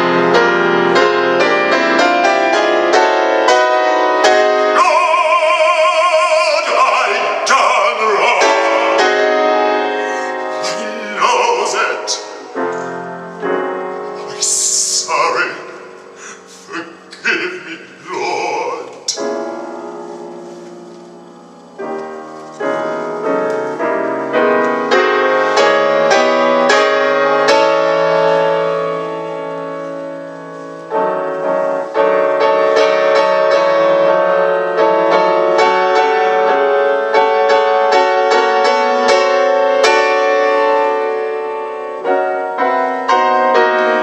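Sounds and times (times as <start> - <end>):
grand piano playing chords: 0.0 - 44.0.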